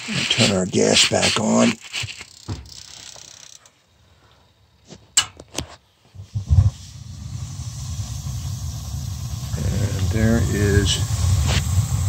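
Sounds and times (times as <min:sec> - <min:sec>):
gas burners igniting with thump: 0:04.8 - 0:12.0
gas burner rumble: 0:06.1 - 0:12.0.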